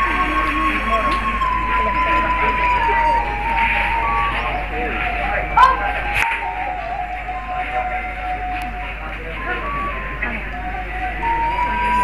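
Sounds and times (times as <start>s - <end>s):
background murmur: 0.0s - 12.0s
wind instrument slow melody: 0.0s - 12.0s.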